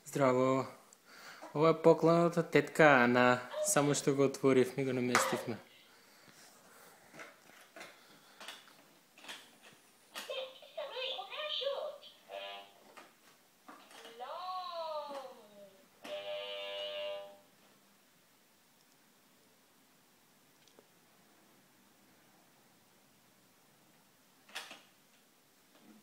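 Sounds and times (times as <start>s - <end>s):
toy electronic voice phrases: 10.2s - 12.8s.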